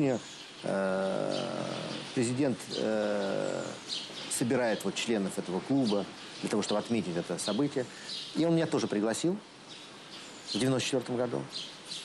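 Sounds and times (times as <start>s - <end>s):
man's drawn-out hesitation sound: 0.0s - 9.6s.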